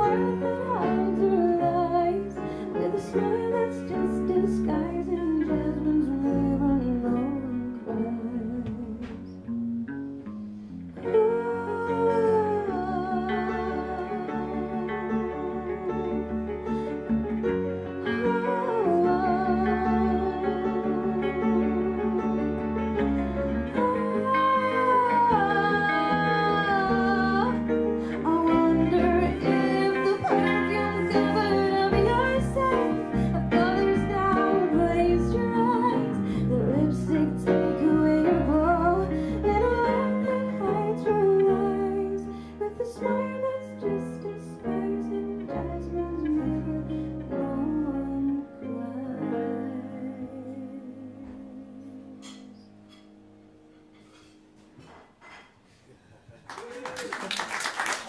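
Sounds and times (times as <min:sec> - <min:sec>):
woman singing: 0:00.0 - 0:09.5, 0:11.0 - 0:52.8
band playing guitars piano drums: 0:12.1 - 0:40.3.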